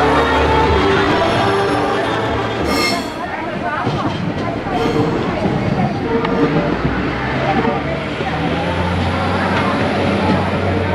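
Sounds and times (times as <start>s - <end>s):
indistinct voices: 0.0s - 10.9s.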